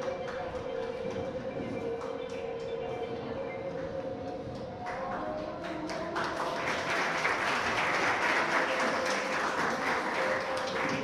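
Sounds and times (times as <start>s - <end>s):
audience clapping: 0.0s - 2.7s, 4.6s - 11.0s.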